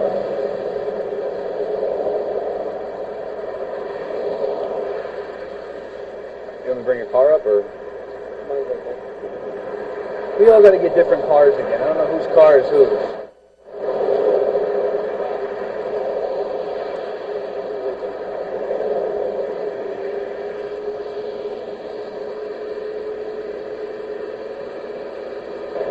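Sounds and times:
faint steady hum: 0:00.0 - 0:25.9
static hiss: 0:00.0 - 0:25.9.

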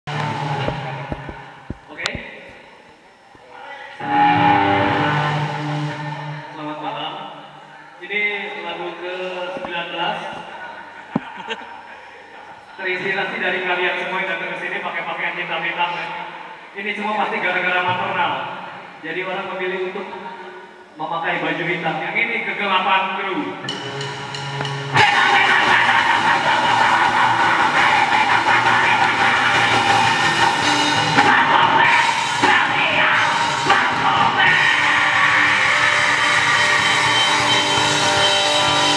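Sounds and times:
drum kit: 0:00.1 - 0:03.0, 0:23.6 - 0:38.9
distorted electric guitar chord: 0:23.6 - 0:38.9.

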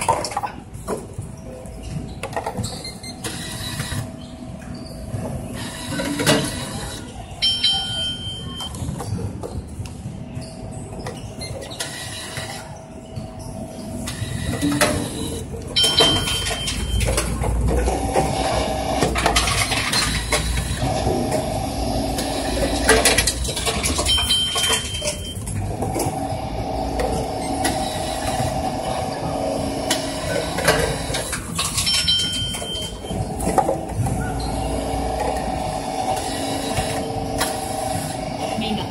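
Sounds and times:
machine whirring hum: 0:00.0 - 0:38.9.

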